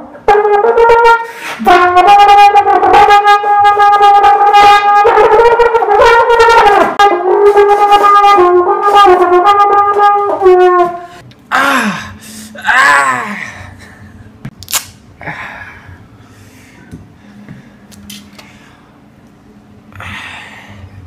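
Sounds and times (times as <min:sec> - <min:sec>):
trombone playing: 0:00.0 - 0:11.2.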